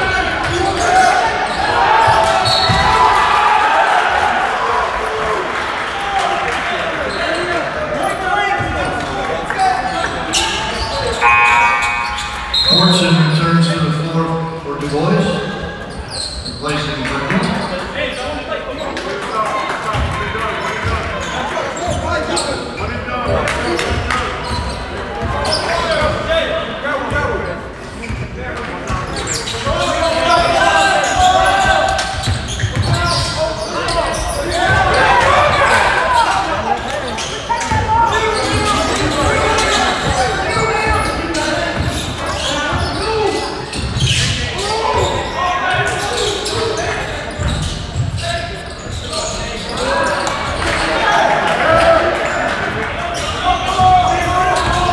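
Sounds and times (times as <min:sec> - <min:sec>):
voices and calls: 0:08.8 - 0:14.2.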